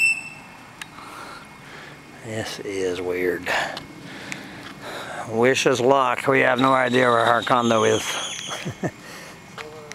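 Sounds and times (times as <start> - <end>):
high whistle-like tone: 0.0 - 0.6, 6.5 - 8.6
low background noise: 0.0 - 9.9.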